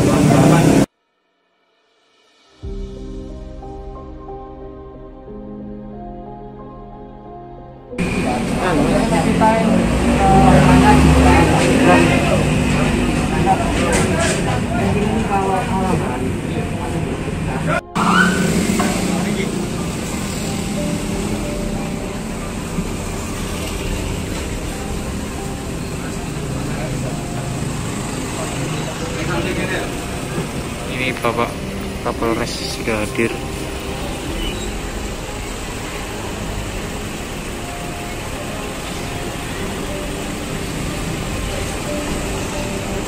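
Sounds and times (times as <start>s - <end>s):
motorcycles passing: 0.0s - 0.9s, 8.0s - 43.0s
street traffic: 0.0s - 0.9s, 5.1s - 43.0s
chatter of voices: 8.0s - 20.0s.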